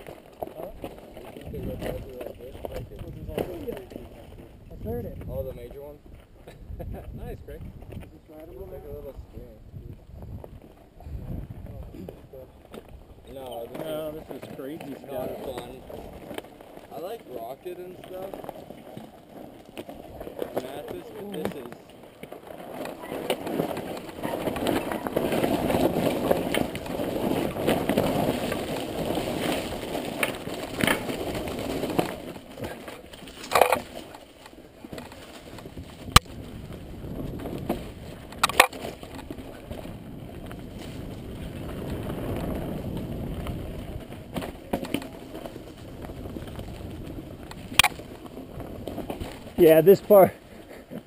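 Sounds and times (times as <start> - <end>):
bike tyres crunching over stones: 0.0 - 51.0
bike knocking on rocks: 11.5 - 50.3.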